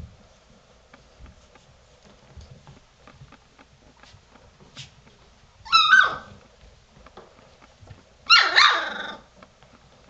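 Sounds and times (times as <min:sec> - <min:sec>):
puppies yelping: 0:05.7 - 0:06.4, 0:08.3 - 0:09.3.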